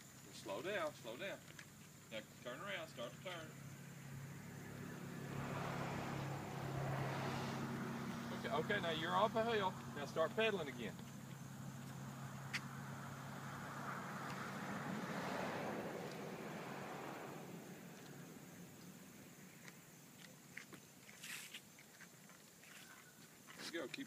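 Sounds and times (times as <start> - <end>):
car passing: 2.1 - 20.1.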